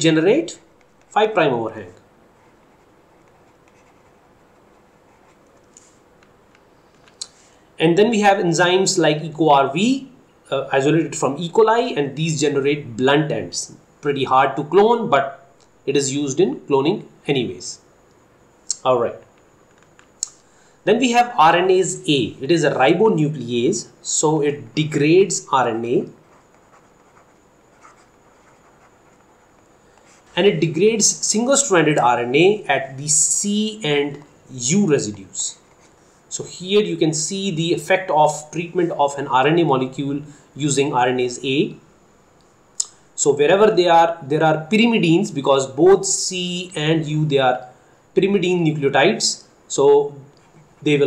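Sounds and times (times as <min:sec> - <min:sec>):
stylus scratching on pen tablet: 0:02.3 - 0:06.0, 0:26.1 - 0:30.5, 0:35.5 - 0:36.2.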